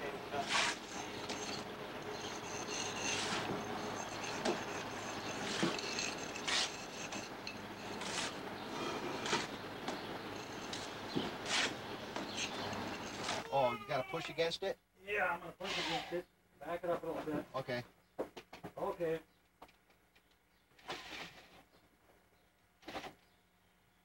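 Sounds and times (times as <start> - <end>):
trowels scraping mortar: 0.4 - 9.6, 10.4 - 13.5, 20.8 - 21.6.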